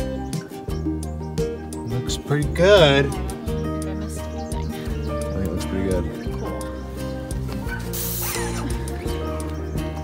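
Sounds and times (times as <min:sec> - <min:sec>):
background music: 0:00.0 - 0:10.0
paint sprayer hiss: 0:07.8 - 0:09.0.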